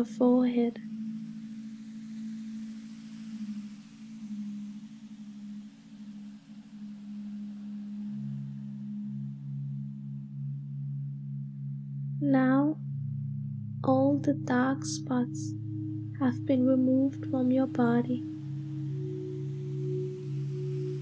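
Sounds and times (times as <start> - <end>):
low drone meditation music: 0.0 - 21.0.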